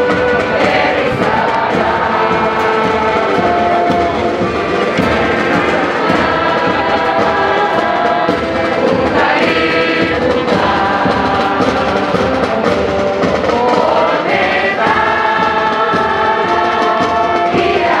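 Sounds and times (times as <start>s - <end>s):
group of voices singing: 0.0s - 18.0s.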